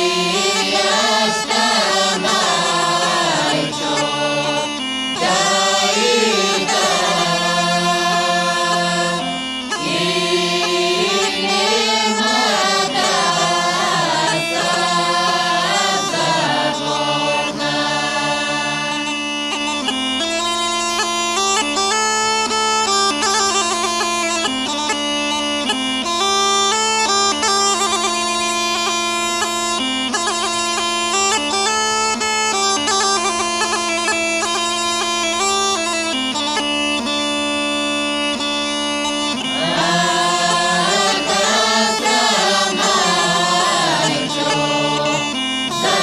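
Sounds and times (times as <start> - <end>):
group singing: 0.0 - 19.1, 39.4 - 46.0
bagpipe drone and melody: 0.0 - 46.0.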